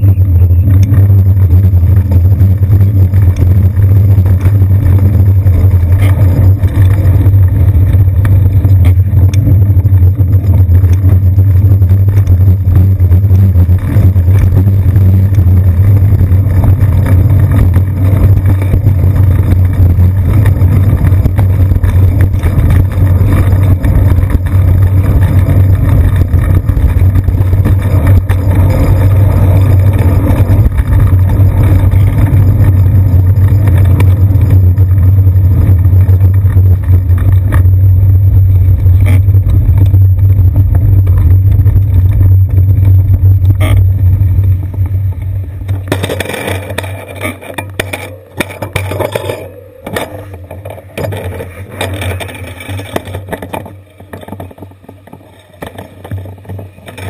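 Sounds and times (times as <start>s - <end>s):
city street traffic: 0.0s - 55.2s
bicycle road rumble: 0.0s - 57.0s.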